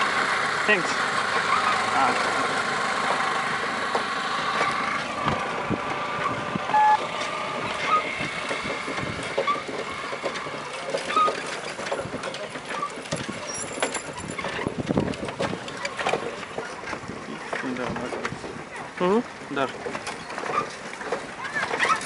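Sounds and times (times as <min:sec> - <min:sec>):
road traffic noise: 0:00.0 - 0:22.0
short horn beep: 0:06.7 - 0:07.0.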